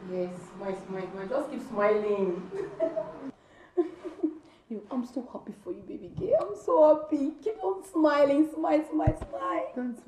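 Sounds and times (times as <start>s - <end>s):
woman talking: 0.0s - 3.4s, 4.2s - 10.0s.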